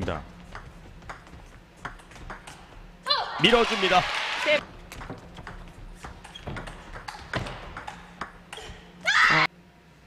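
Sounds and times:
table tennis ball clicking: 0:04.9 - 0:08.6.

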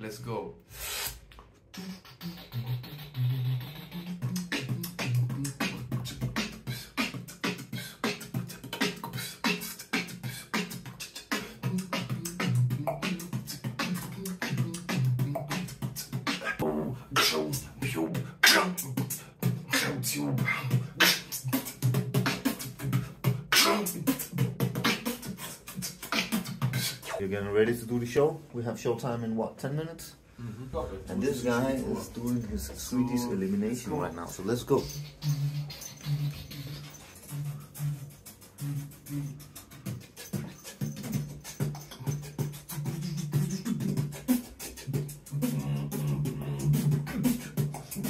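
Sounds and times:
beatbox mouth percussion: 0:00.7 - 0:27.3, 0:31.1 - 0:48.0
hummed bass line: 0:44.9 - 0:48.0.

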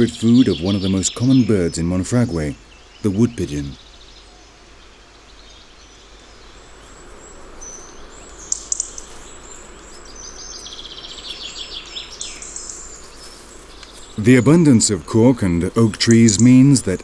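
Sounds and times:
faint outdoor hiss: 0:00.0 - 0:17.0
small birds chirping and trilling: 0:00.0 - 0:17.0.

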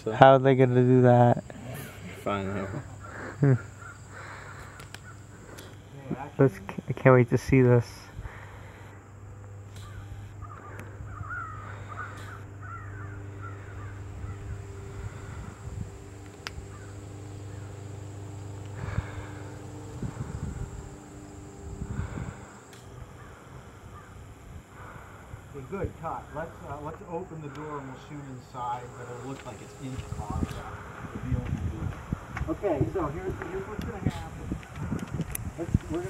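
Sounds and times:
low steady hum: 0:00.0 - 0:36.0
birds cawing: 0:02.2 - 0:06.0, 0:08.2 - 0:31.4
sharp click: 0:09.7 - 0:10.0.

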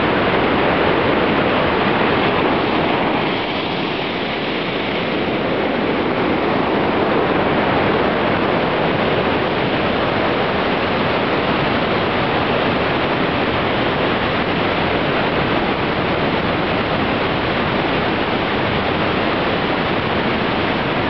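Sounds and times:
river rushing over boulders: 0:00.0 - 0:21.0.

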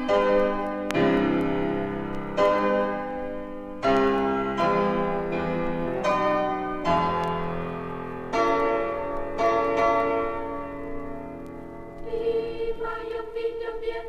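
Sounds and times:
bell-like piano chords: 0:00.0 - 0:12.0
high voices singing: 0:12.0 - 0:14.0.

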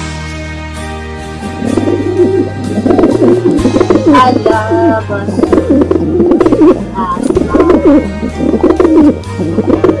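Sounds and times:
faint background music: 0:00.0 - 0:10.0
doves cooing: 0:01.6 - 0:10.0.

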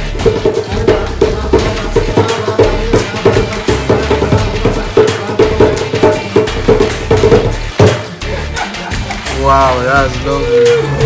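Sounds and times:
djembe hand drumming: 0:00.0 - 0:11.0.

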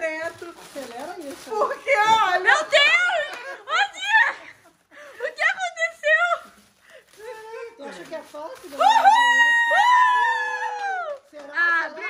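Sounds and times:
women squealing: 0:08.8 - 0:11.1.

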